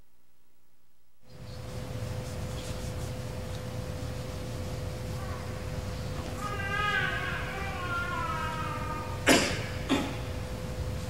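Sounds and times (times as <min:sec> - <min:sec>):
electrical hum: 0:00.0 - 0:11.0
high-pitched vocal cry: 0:05.2 - 0:10.2.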